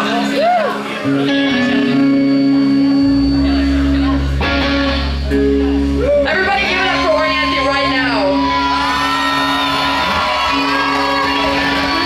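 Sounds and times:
electric guitars ringing chord: 0:00.0 - 0:12.0
deep bass guitar note: 0:01.1 - 0:08.7.

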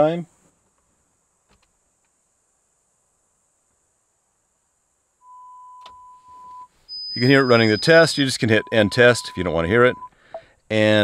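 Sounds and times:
electronic test tones: 0:05.2 - 0:10.1.

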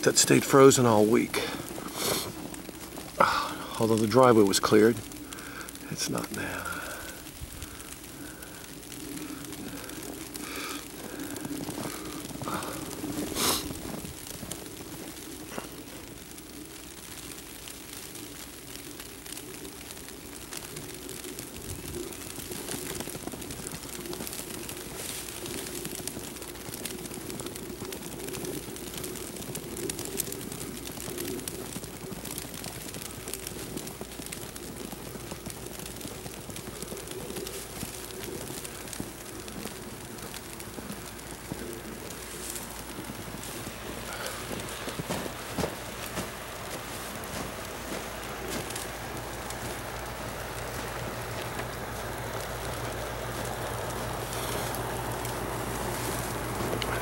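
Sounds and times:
low drone: 0:00.0 - 0:16.7, 0:36.7 - 0:57.0
steady hiss: 0:00.0 - 0:57.0
footsteps in snow: 0:08.7 - 0:16.3, 0:35.2 - 0:57.0.

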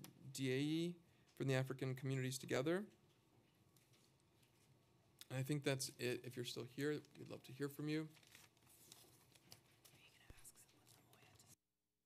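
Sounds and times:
soft whispering: 0:09.7 - 0:11.6.

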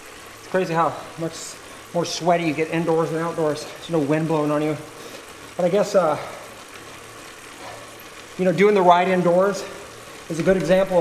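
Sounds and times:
bike on trainer whirring: 0:00.0 - 0:11.0.

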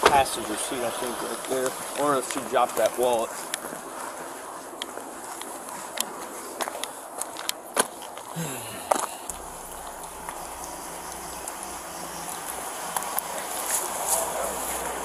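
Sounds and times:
steady low hum: 0:08.4 - 0:15.0.

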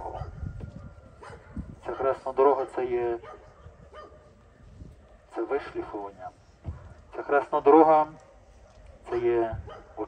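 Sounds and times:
man speaking through megaphone: 0:00.0 - 0:00.3, 0:01.8 - 0:03.4, 0:05.3 - 0:06.4, 0:07.0 - 0:08.2, 0:09.0 - 0:10.0.

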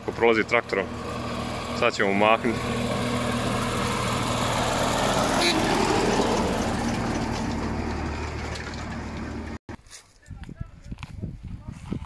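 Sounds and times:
diesel tractor driving past: 0:00.0 - 0:09.6.

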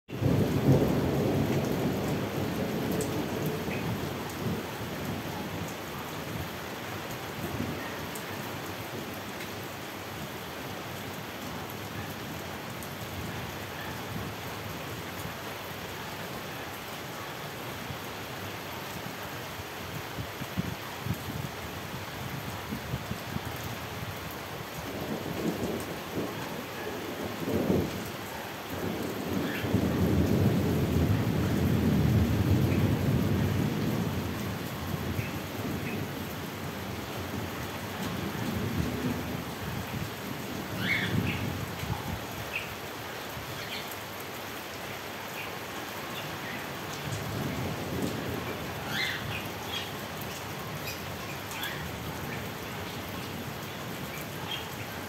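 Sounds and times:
rain falling: 0:00.1 - 0:55.0.

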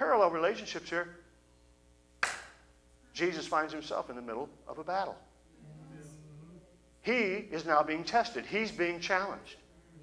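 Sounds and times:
faint steady hum: 0:00.0 - 0:10.0
sharp knock with room echo: 0:02.2 - 0:02.7.

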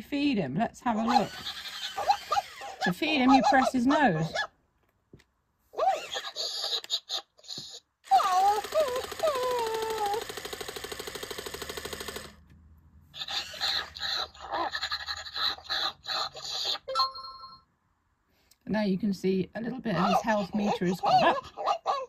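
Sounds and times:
robotic yelps: 0:01.0 - 0:04.5, 0:05.8 - 0:07.5, 0:13.2 - 0:16.9, 0:20.0 - 0:22.0.

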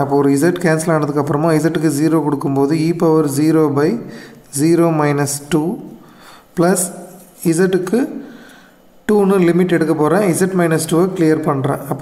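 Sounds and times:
man talking: 0:00.0 - 0:08.4, 0:09.0 - 0:12.0.

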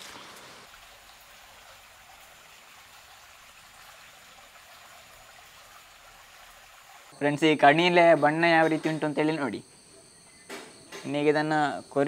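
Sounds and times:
flowing forest stream: 0:00.0 - 0:07.2.

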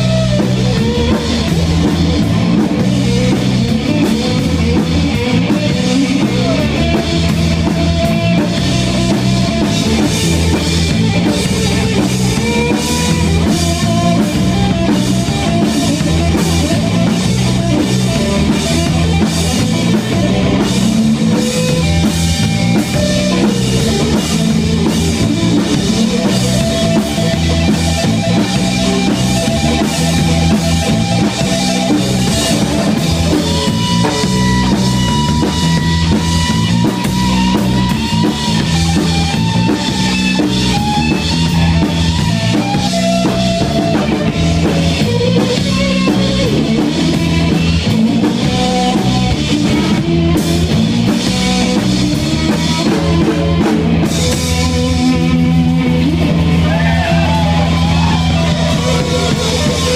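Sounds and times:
drum kit beat: 0:00.0 - 0:59.9
electric guitar: 0:00.0 - 0:59.9.

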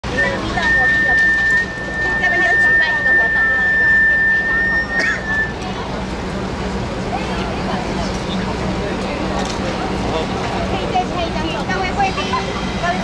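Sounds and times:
people chatting: 0:00.0 - 0:13.0
hand whistle blast: 0:00.1 - 0:05.6.

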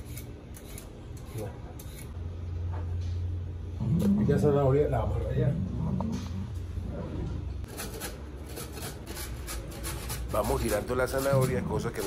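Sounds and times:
peeler scraping carrot: 0:00.0 - 0:02.2, 0:07.7 - 0:12.0
low steady rumble: 0:02.1 - 0:07.7.

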